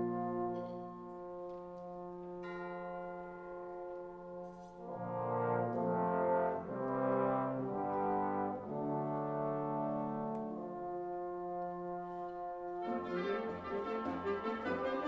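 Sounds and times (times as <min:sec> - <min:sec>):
trombone: 0:00.0 - 0:02.8, 0:04.3 - 0:15.0
french horn: 0:00.0 - 0:15.0
wind band playing slow chords: 0:00.0 - 0:15.0.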